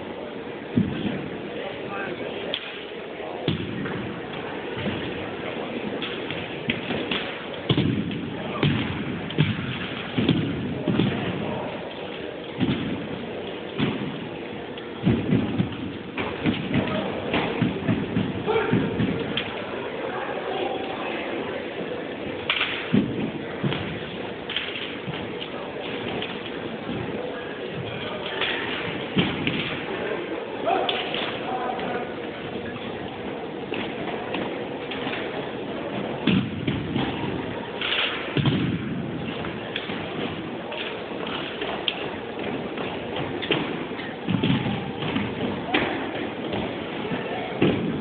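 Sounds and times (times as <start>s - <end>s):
rifles thudding and slapping: 6.0s - 19.6s, 22.4s - 27.1s, 27.8s - 30.0s, 33.7s - 48.0s.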